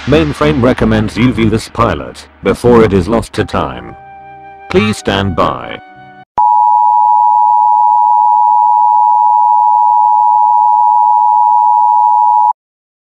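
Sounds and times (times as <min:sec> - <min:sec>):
faint hiss: 0:00.0 - 0:03.2.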